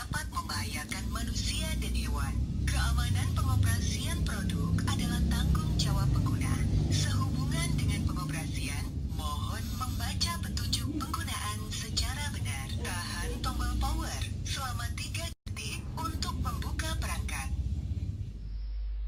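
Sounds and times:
recorded voice prompt from speaker: 0.0 - 17.6
low rumble: 0.0 - 19.0.

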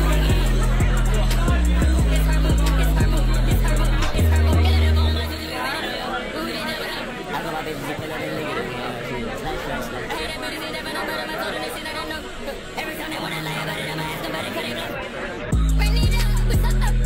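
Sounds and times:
loud bass beat: 0.0 - 5.4, 15.5 - 17.0
music playing: 0.0 - 5.6, 15.5 - 17.0
people chatting: 0.0 - 17.0.

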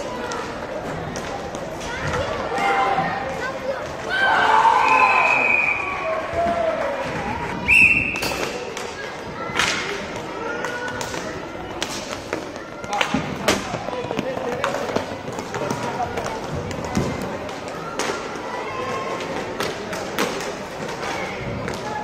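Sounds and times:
sticks and puck clacking: 0.0 - 2.4, 8.2 - 22.0
referee whistle blast: 7.7 - 8.4.

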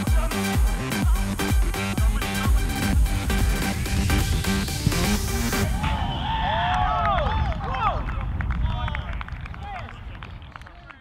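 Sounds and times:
electronic dance music: 0.0 - 5.9
men shouting and cheering: 5.5 - 9.9.

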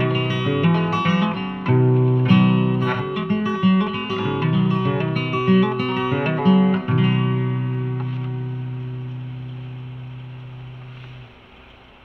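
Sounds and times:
strummed guitar chord ringing: 0.0 - 11.7
faint hiss: 0.0 - 12.0.

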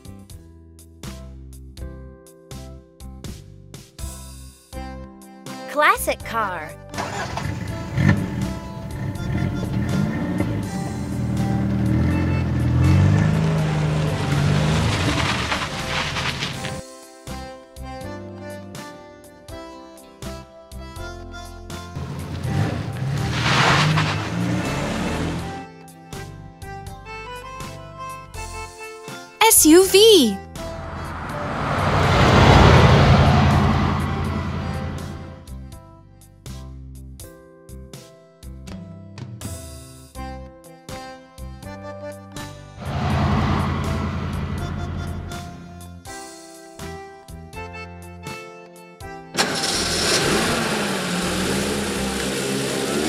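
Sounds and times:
background music: 1.1 - 36.0
car engine revving: 7.0 - 16.8, 22.0 - 25.6, 30.7 - 35.4, 42.8 - 45.6, 49.4 - 53.0.

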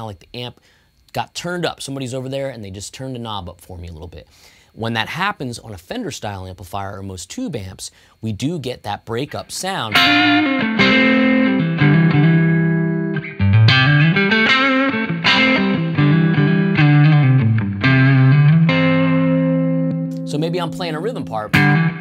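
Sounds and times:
overdriven electric guitar strumming chords: 9.8 - 22.0.

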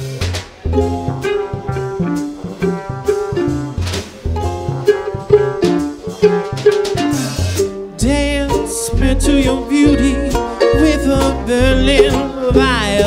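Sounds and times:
bass: 0.0 - 13.0
drum kit: 0.0 - 13.0
trombone melody: 0.7 - 13.0.

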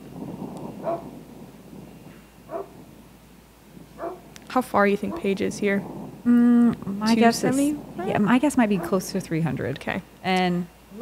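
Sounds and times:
wind rushing: 0.0 - 10.2
dog barking: 0.8 - 1.1, 2.5 - 2.8, 4.0 - 4.3, 8.7 - 9.0.

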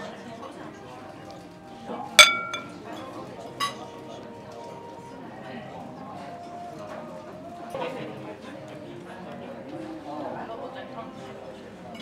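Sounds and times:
tableware clinking: 2.2 - 2.8.

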